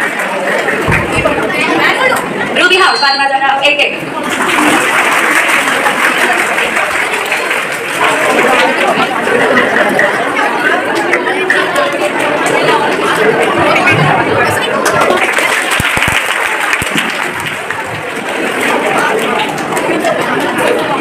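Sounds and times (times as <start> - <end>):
crowd chattering in a hall: 0.0 - 21.0.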